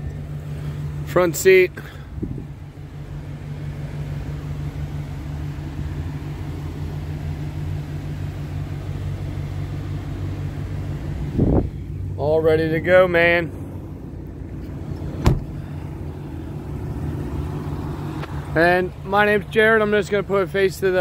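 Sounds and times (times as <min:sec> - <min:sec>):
car engine idling: 0:00.0 - 0:21.0
thump: 0:15.2 - 0:15.6.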